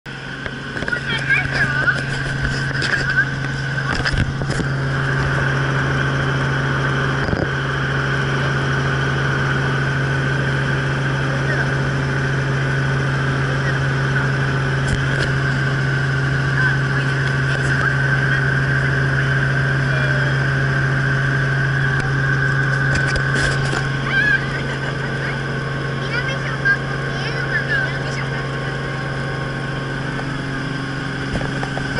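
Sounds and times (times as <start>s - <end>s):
helicopter engine and rotors droning: 0.1s - 31.9s.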